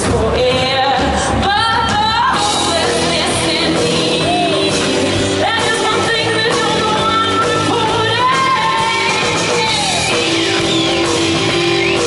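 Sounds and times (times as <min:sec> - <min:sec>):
drums: 0:00.0 - 0:12.0
woman singing: 0:00.0 - 0:12.0
electric guitar: 0:02.3 - 0:12.0.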